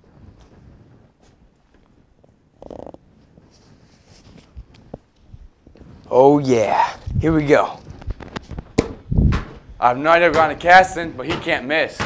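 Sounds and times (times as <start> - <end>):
fabric sleeve rustling: 0.0 - 8.8
muffled thump: 8.7 - 9.6.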